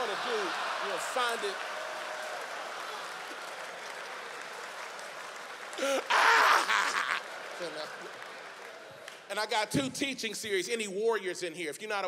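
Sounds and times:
audience applauding: 0.0 - 9.6
man's voice: 9.3 - 12.0.

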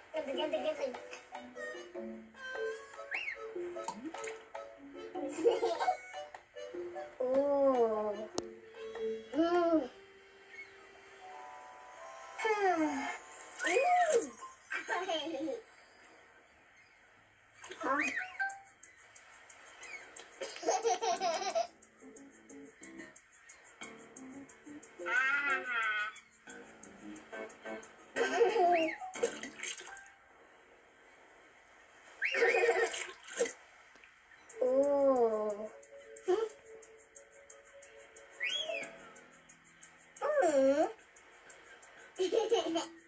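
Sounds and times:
cartoon soundtrack: 12.4 - 15.2, 17.8 - 18.6, 25.0 - 26.3
cartoon character vocalization: 25.0 - 26.2
cartoon water splash effect: 28.8 - 30.0, 32.2 - 33.6.

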